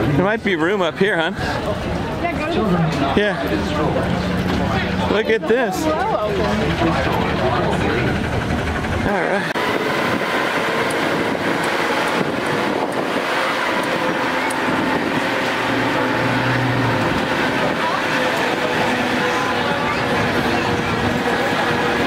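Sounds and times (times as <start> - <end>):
people chattering: 0.0 - 22.0
tram hum: 0.0 - 22.0.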